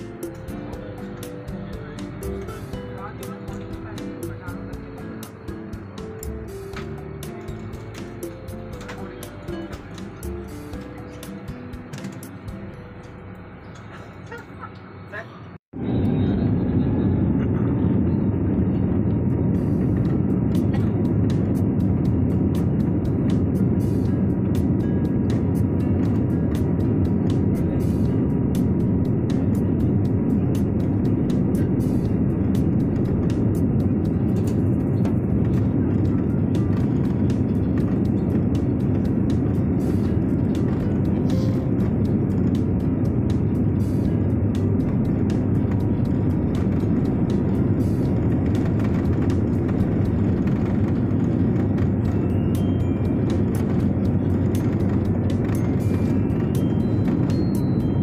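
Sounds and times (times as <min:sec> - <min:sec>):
jet engines rumbling in cabin: 0:00.0 - 0:58.0.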